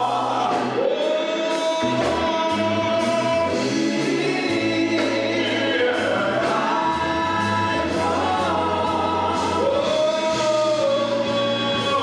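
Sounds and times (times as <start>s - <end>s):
gospel singing on microphones: 0.0s - 12.0s.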